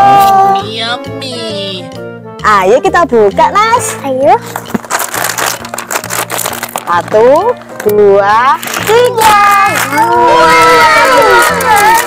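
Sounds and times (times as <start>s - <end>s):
background music: 0.0s - 12.0s
plastic snack bag crinkling: 4.4s - 12.0s.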